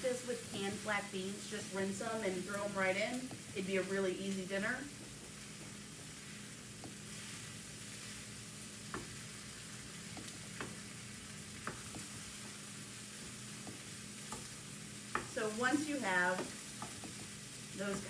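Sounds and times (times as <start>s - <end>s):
beans sizzling in a skillet: 0.0s - 18.0s
wooden spoon knocking on pan: 6.8s - 7.0s, 8.8s - 9.2s, 10.1s - 10.9s, 11.6s - 12.2s, 13.6s - 15.4s, 16.1s - 18.0s.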